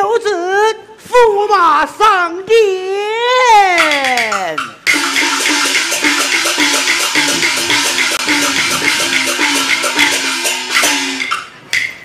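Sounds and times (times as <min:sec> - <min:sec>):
fast even percussion beats: 0:03.7 - 0:12.0
opera melody line: 0:04.9 - 0:11.4.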